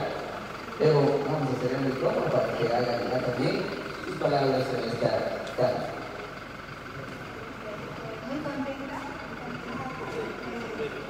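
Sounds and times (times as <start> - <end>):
indistinct voices talking quietly: 0.0 - 11.0
low background noise: 0.0 - 11.0.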